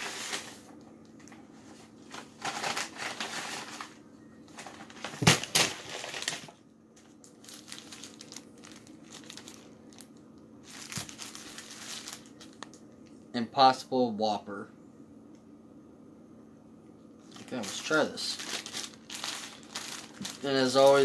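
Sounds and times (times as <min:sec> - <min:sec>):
paper wrapper crinkling: 0:02.1 - 0:04.0, 0:04.6 - 0:12.8, 0:17.2 - 0:21.0.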